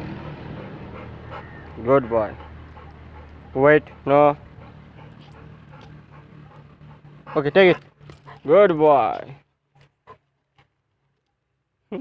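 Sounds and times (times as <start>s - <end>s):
dog panting softly: 0.2s - 8.6s.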